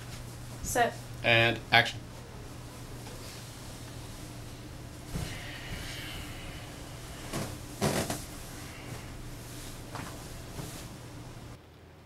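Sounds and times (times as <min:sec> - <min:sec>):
low room hum: 0:00.0 - 0:12.0
bedclothes rustling: 0:02.1 - 0:11.6.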